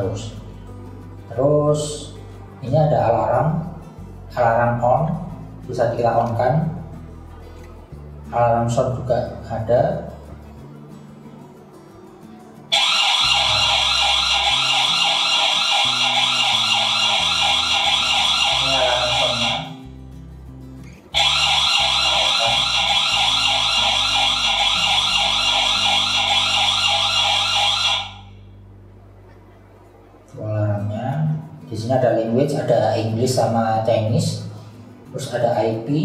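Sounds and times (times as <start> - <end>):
warbling electronic alarm siren: 12.7 - 19.8, 21.2 - 28.4.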